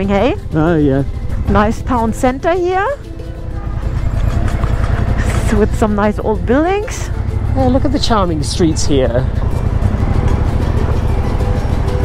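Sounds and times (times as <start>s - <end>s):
faint background music: 0.0s - 12.0s
motorcycle engine rumble: 0.0s - 12.0s.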